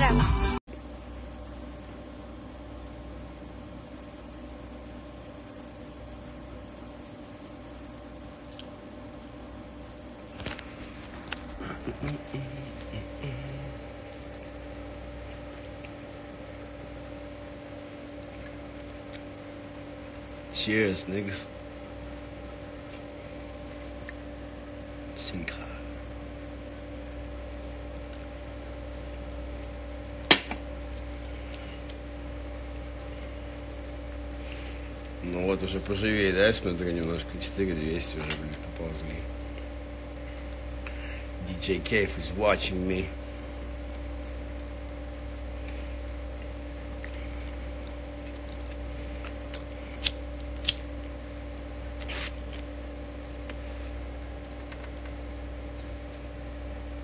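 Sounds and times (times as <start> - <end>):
low machine hum: 0.0 - 57.0.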